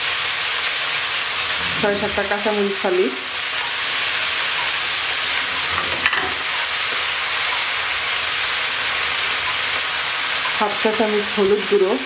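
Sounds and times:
vegetables sizzling in oil: 0.0 - 12.0.

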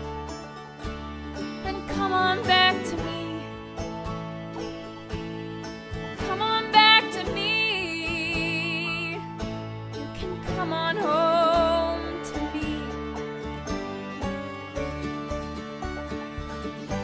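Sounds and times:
acoustic guitar: 0.0 - 17.0
woman singing: 1.6 - 3.6, 6.2 - 9.4, 10.1 - 13.1.

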